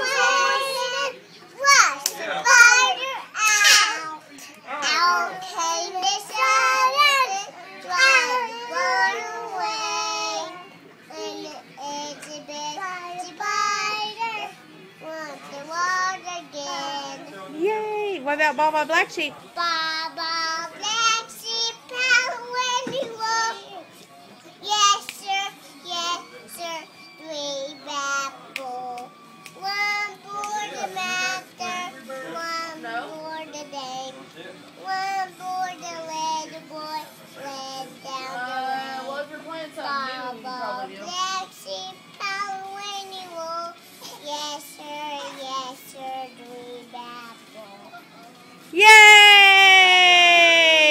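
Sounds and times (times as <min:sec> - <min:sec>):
girls singing: 0:00.0 - 0:01.2
girl singing: 0:00.0 - 0:04.2, 0:04.8 - 0:17.2, 0:19.6 - 0:23.8, 0:24.6 - 0:34.1, 0:39.9 - 0:47.8.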